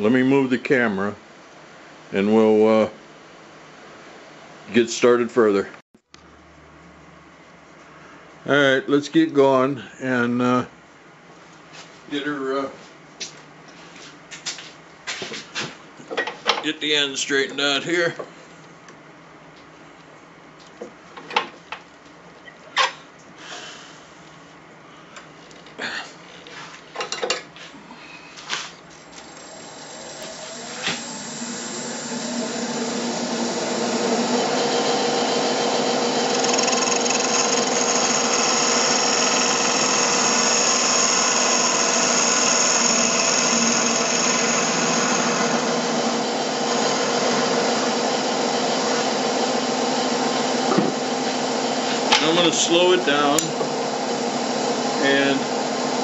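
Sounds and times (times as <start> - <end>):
wood lathe cutting with hum: 29.2 - 56.0
lathe tool ticking on wood: 36.1 - 45.2.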